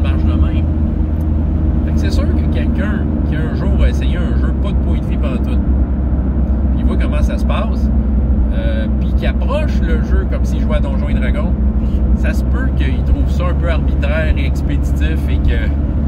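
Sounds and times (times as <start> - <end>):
man talking: 0.0 - 0.7, 1.8 - 5.6, 6.7 - 7.9, 8.5 - 11.6, 12.2 - 15.8
car engine and road noise: 0.0 - 16.0.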